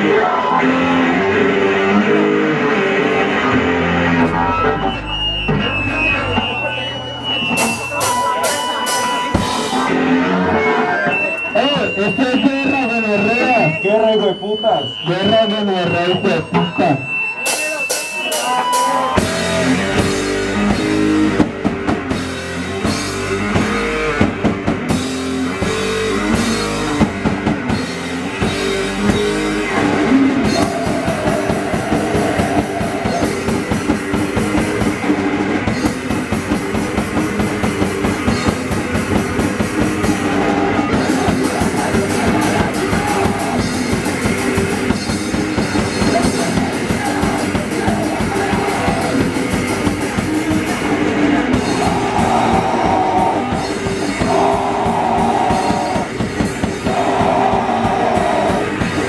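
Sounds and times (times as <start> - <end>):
bass guitar: 0.0 - 14.1, 15.0 - 59.0
distorted electric guitar: 0.0 - 59.0
drum kit: 3.0 - 13.8, 15.2 - 59.0.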